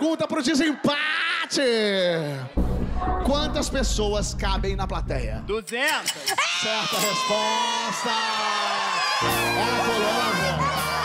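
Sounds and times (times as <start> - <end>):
women cheering and whooping: 6.3 - 11.0.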